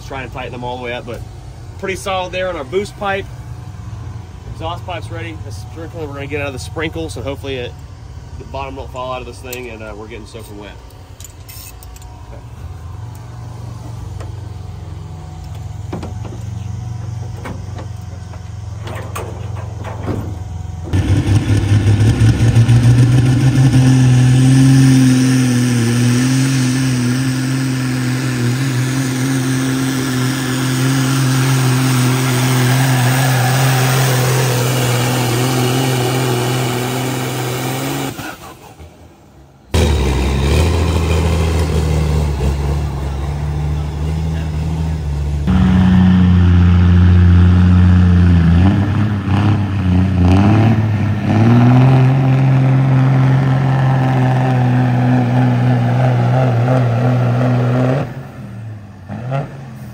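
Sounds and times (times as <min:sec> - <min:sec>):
faint high whine: 0:00.0 - 0:21.0
diesel truck engine idling: 0:00.0 - 0:23.4
second truck engine running: 0:00.0 - 0:59.9
truck engine at full throttle: 0:00.0 - 0:59.9.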